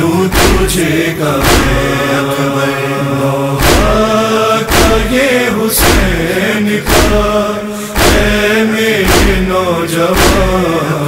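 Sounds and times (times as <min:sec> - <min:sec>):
chorus singing: 0:00.0 - 0:11.0
man chanting a lament: 0:00.0 - 0:11.0
percussive beat: 0:00.3 - 0:02.1, 0:03.6 - 0:09.6, 0:10.2 - 0:10.8.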